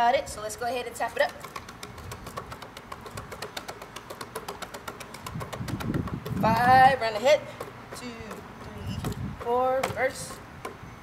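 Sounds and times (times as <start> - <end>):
fingertips slapping basketball: 1.0 - 10.9.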